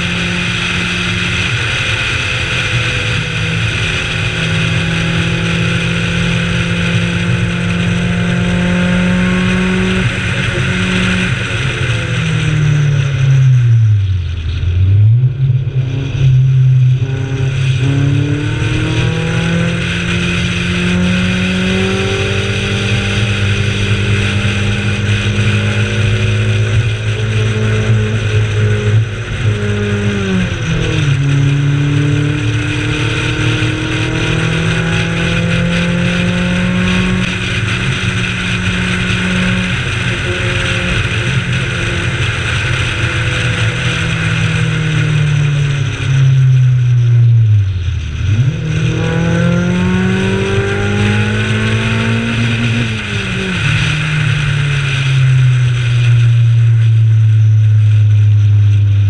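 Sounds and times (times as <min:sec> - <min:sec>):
race car engine driven hard: 0:00.0 - 0:59.0
wind and road noise: 0:00.0 - 0:59.0.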